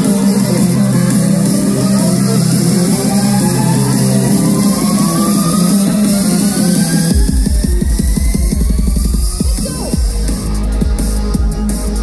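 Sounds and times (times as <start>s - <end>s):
rising synth sweep: 0.0s - 9.4s
live band with electric guitar: 0.0s - 12.0s.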